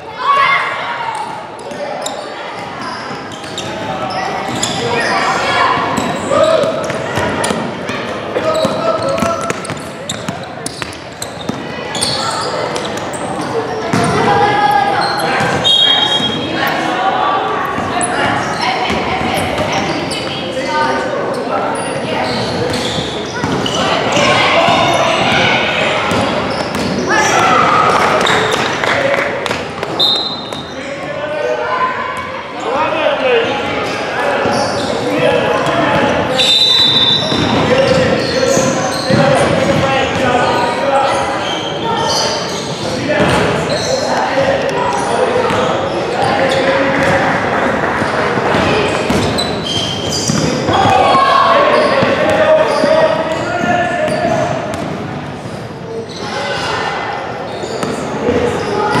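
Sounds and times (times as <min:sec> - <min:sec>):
players shouting and chatter: 0:00.0 - 0:59.0
basketball bouncing: 0:05.9 - 0:11.6, 0:23.4 - 0:27.0, 0:48.4 - 0:51.2.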